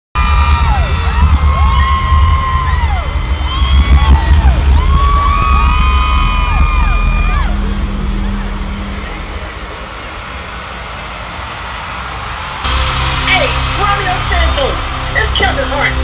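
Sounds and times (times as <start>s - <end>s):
crowd screaming and cheering: 0.1s - 16.0s
live concert music with heavy bass: 0.2s - 11.5s, 12.6s - 16.0s.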